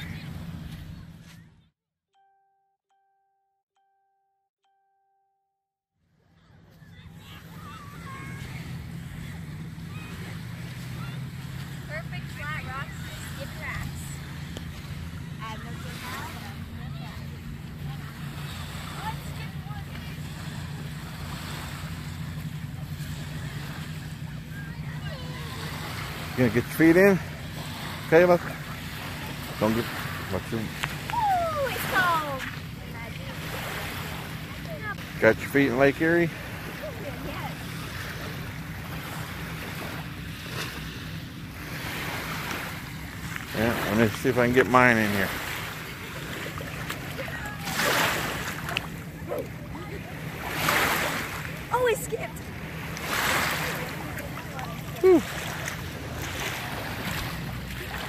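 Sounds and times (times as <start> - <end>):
distant motor drone: 0.0 - 1.6, 6.2 - 58.0
faint voices: 6.3 - 39.0, 43.5 - 58.0
lake waves washing on shore: 6.5 - 58.0.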